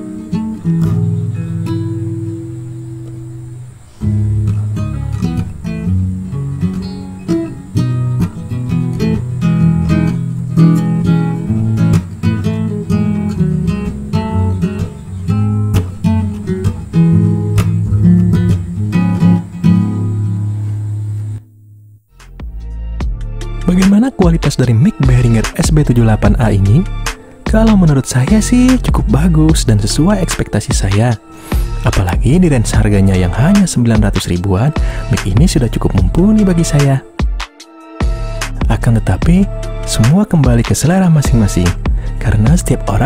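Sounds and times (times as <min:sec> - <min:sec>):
acoustic guitar chord ringing: 0:00.0 - 0:24.3.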